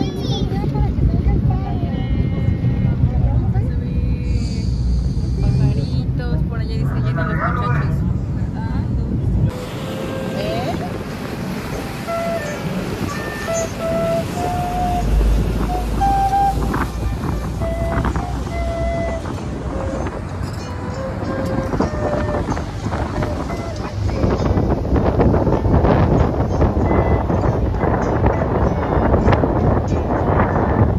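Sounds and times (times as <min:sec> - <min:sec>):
ferry engines rumbling: 0:00.0 - 0:30.9
passenger chatter: 0:00.0 - 0:30.9
wind buffeting microphone: 0:00.0 - 0:30.9.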